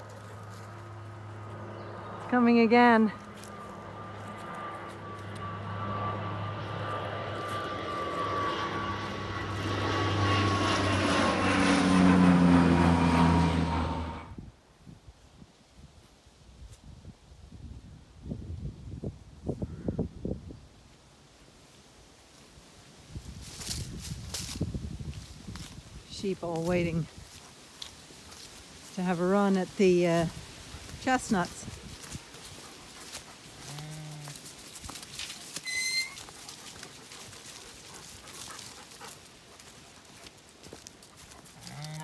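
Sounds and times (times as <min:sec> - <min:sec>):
low-flying plane engine: 0:00.0 - 0:14.7, 0:17.5 - 0:42.0.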